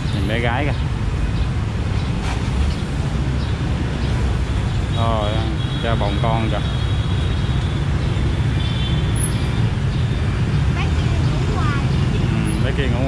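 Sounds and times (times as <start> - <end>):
voices: 0.0 - 0.9, 4.9 - 6.8, 10.6 - 13.0
motorbike engines passing: 0.0 - 13.0.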